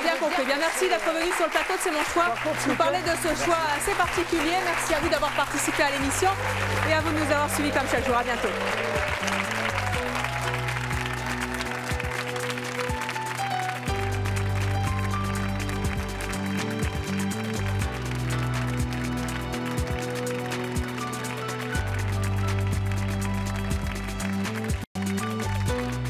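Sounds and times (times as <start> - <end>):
instrumental music with beat and bass: 8.2 - 26.0.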